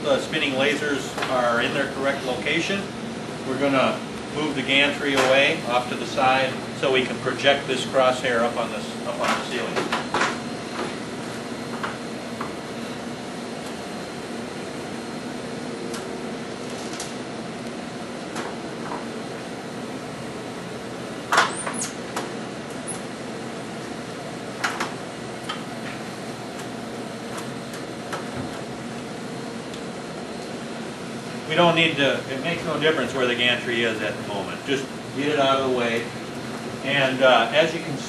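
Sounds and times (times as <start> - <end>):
steady machine hum: 0.0 - 38.0.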